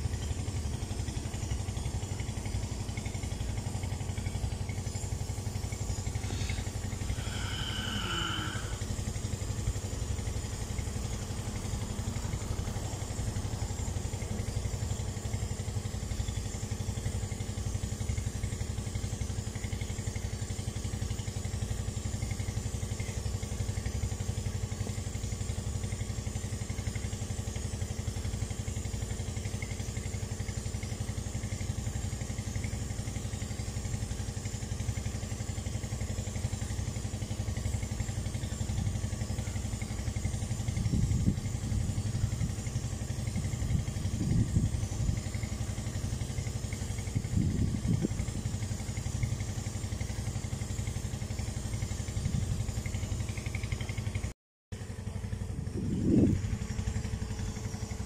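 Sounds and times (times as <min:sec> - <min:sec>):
engine idling: 0:00.0 - 0:58.0.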